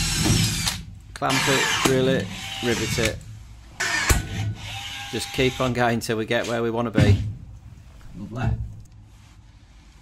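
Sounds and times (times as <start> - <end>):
cordless power tool drilling: 0.0 - 3.2, 3.8 - 5.8.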